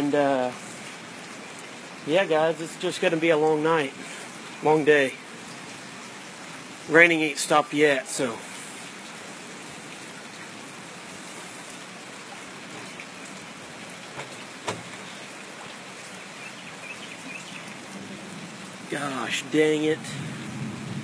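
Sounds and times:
steady rain hiss: 0.0 - 21.0.

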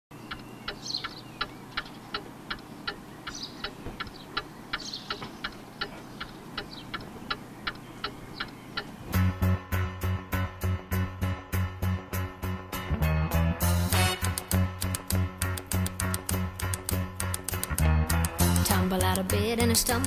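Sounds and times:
high chirps: 0.1 - 9.1
clock ticking: 0.2 - 9.0, 14.2 - 20.0
music with a strong beat: 9.1 - 19.4.

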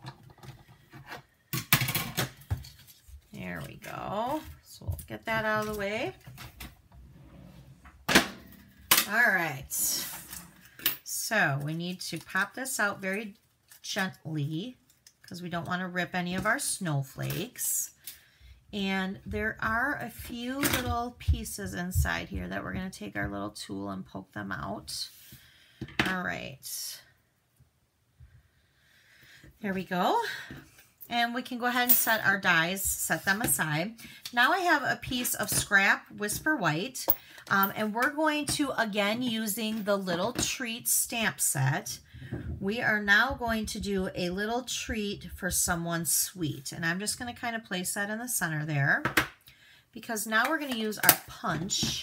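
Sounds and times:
plates scraping through rollers: 7.0 - 7.8.

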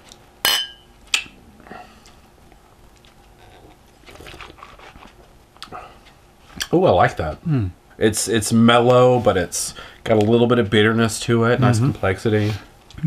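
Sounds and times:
glasses clinking: 0.4 - 1.3
faint sipping: 3.0 - 6.2.

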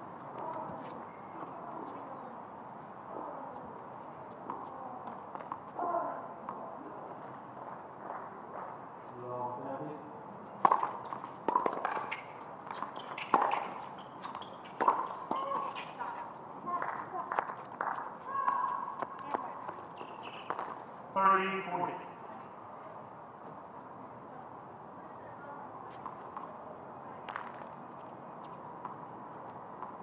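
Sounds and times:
footsteps on court: 0.1 - 2.1, 10.6 - 21.0
racket striking tennis ball: 10.6 - 16.0
ball bouncing: 10.6 - 20.8
shoe squeaks: 10.8 - 16.3, 18.6 - 20.9.

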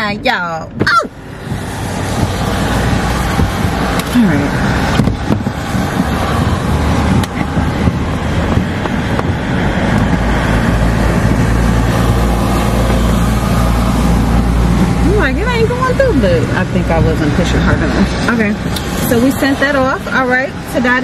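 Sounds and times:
road noise: 0.0 - 21.0.

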